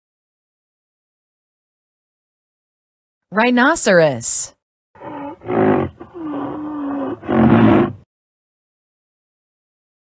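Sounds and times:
rhinoceros calling: 0:05.0 - 0:08.0.

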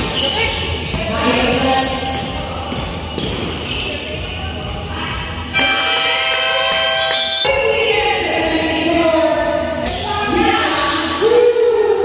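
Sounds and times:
basketball bouncing on floor: 0:00.8 - 0:03.6.

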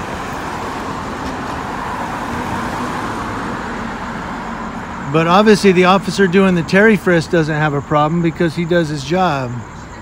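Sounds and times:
cars driving past: 0:00.0 - 0:10.0.

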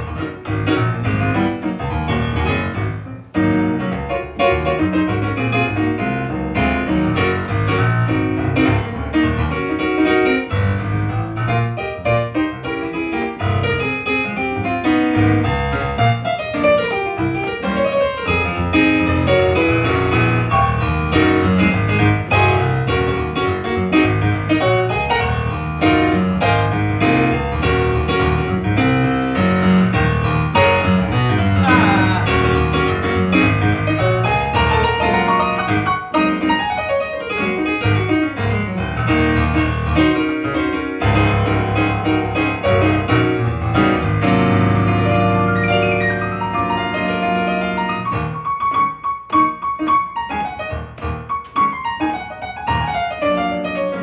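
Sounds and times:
electric piano bass line and chords: 0:00.0 - 0:54.0.

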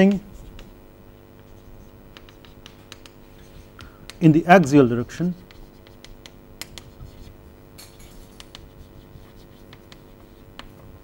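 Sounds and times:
faint steady hum: 0:00.0 - 0:11.0
chalk scratching on blackboard: 0:01.4 - 0:03.8, 0:05.2 - 0:07.4, 0:08.0 - 0:10.8.

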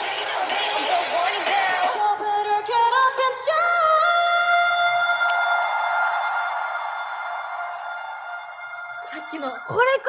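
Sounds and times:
woman singing pop live: 0:00.0 - 0:05.6.

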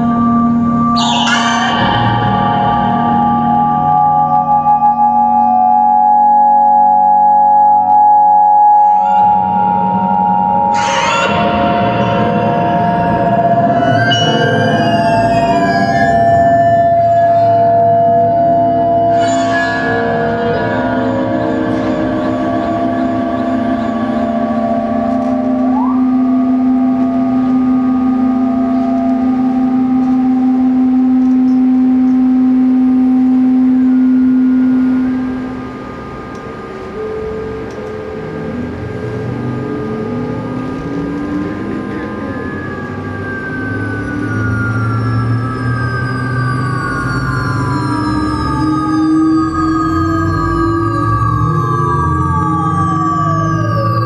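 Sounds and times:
strong low hum: 0:00.0 - 0:07.4, 0:08.2 - 0:54.0
electronic drone music: 0:00.0 - 0:54.0
high gliding siren-like tones: 0:00.0 - 0:54.0.

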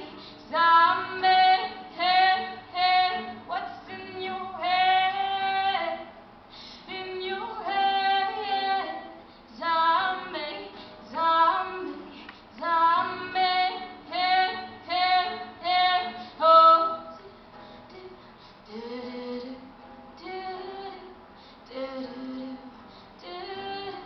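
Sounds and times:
woman singing: 0:00.0 - 0:06.1, 0:06.8 - 0:24.0
guitar accompaniment: 0:00.0 - 0:24.0.

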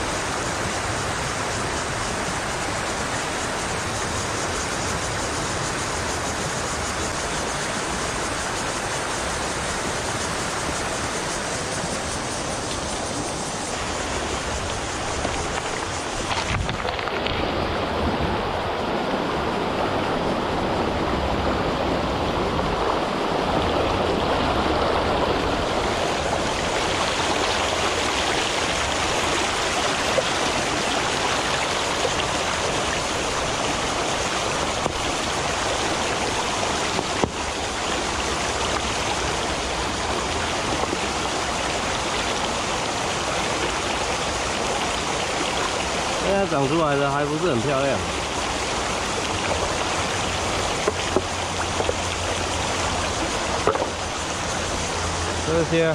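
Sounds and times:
stream rushing over stones: 0:00.0 - 0:55.9.

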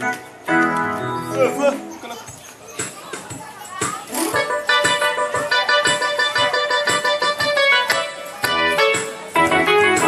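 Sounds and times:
sustained keyboard chords: 0:00.0 - 0:02.4, 0:03.8 - 0:10.0
drum machine beat: 0:00.0 - 0:10.0.

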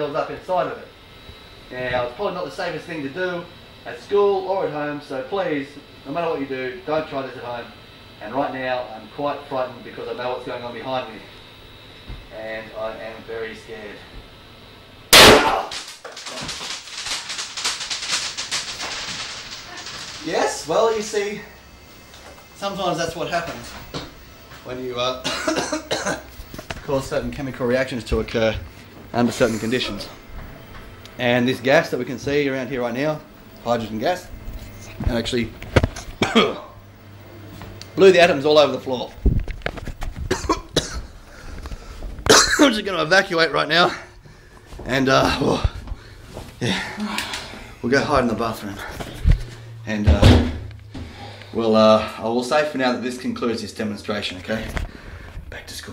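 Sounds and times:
bottle bursting bang: 0:15.1 - 0:15.8
rapid crackling: 0:15.2 - 0:21.4
man coughing: 0:25.2 - 0:26.3, 0:36.2 - 0:36.8, 0:40.3 - 0:41.2, 0:42.3 - 0:42.7.

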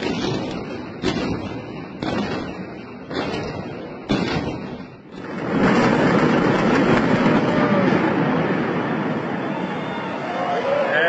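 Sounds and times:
building collapsing rumble: 0:00.0 - 0:10.5.

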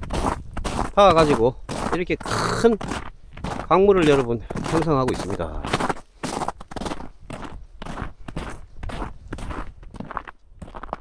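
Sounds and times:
footsteps on snow: 0:00.0 - 0:11.0.

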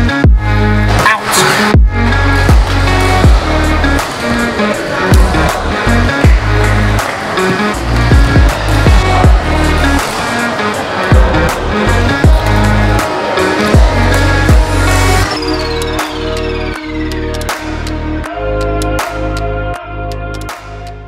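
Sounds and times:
electronic music with heavy bass: 0:00.0 - 0:21.0.

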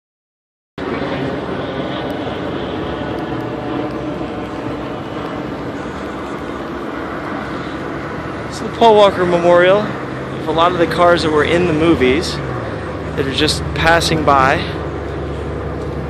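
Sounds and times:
cars passing on road: 0:00.8 - 0:16.0.

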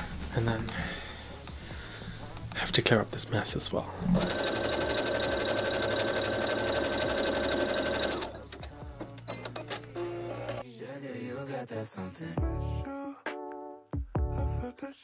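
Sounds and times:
background music: 0:00.0 - 0:15.0
electric sewing machine stitching: 0:04.1 - 0:08.7.

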